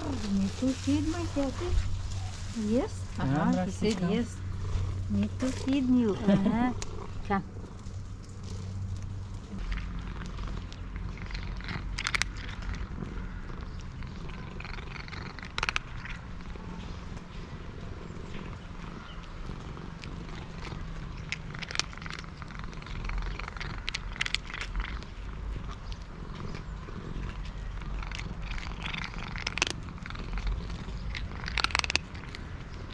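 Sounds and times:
cat purring: 0.0 - 32.9
dry kibble crunching: 0.0 - 32.9.

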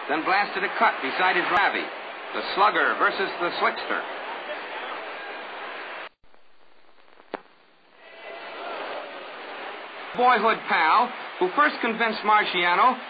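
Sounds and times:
arena crowd noise: 0.0 - 6.2, 7.8 - 13.0.

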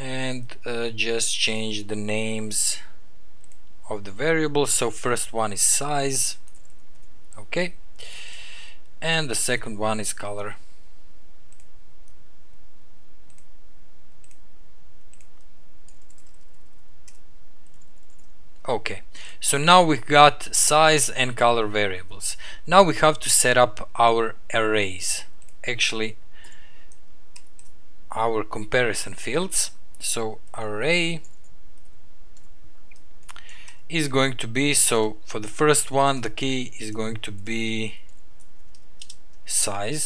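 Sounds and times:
person speaking: 0.0 - 3.0, 3.8 - 6.5, 7.3 - 8.3, 9.0 - 10.7, 18.6 - 26.2, 28.1 - 31.4, 33.3 - 38.2, 39.0 - 40.0
steady low hum: 0.0 - 40.0
computer keyboard keys clicking: 15.1 - 18.3, 38.1 - 39.2.

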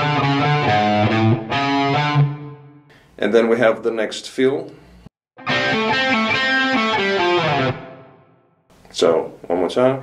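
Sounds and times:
electric guitar fill: 0.0 - 3.0, 5.4 - 8.5.

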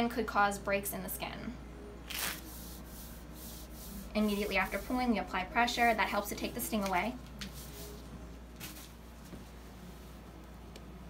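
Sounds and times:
wax strip ripped off skin: 2.1 - 2.4
faint rubbing: 2.1 - 6.9.

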